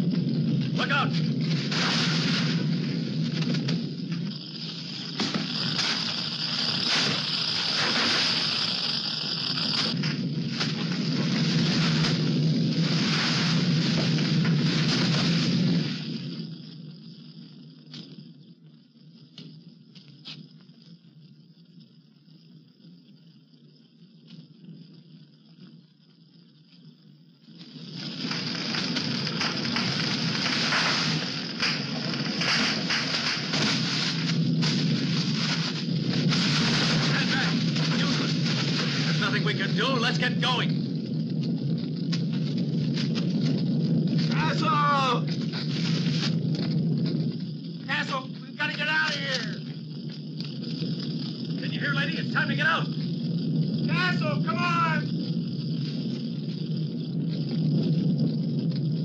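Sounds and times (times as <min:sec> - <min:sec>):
stable and hay burning crackling: 0:00.0 - 0:59.0.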